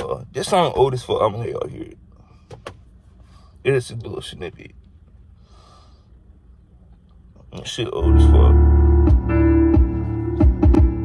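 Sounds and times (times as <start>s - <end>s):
soft breath: 3.1s - 3.6s, 5.3s - 6.3s
car cabin low rumble: 6.4s - 11.0s.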